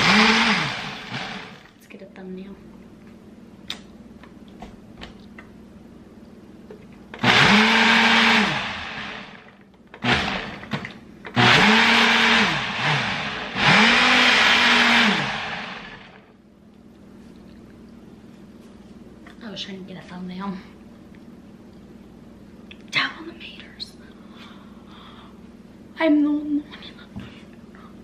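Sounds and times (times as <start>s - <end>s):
blender motor grinding ice: 0.0s - 1.7s, 7.2s - 10.7s, 11.3s - 16.2s.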